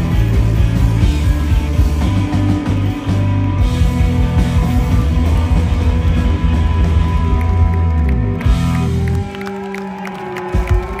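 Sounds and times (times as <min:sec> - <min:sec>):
crowd clapping and cheering: 0:00.0 - 0:11.0
live rock band: 0:00.0 - 0:11.0.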